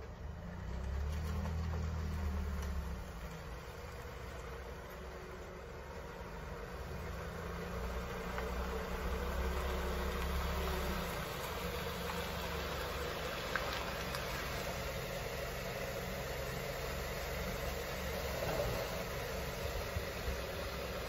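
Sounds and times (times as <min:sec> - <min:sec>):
car engine idling: 0:00.0 - 0:21.0.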